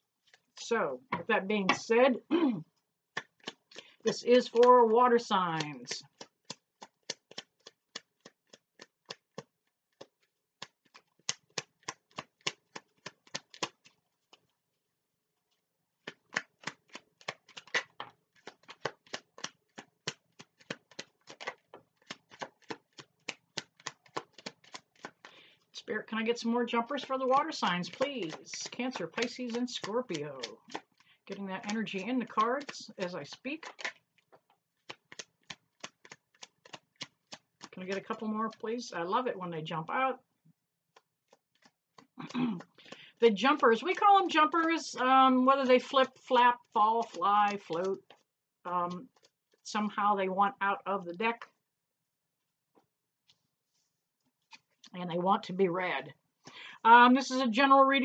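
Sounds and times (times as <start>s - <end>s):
cards being shuffled: 0.2s - 0.5s, 3.2s - 5.0s, 5.6s - 14.6s, 15.4s - 25.8s, 26.7s - 38.6s, 40.9s - 45.0s, 45.6s - 48.3s, 48.9s - 49.6s, 52.8s - 54.9s.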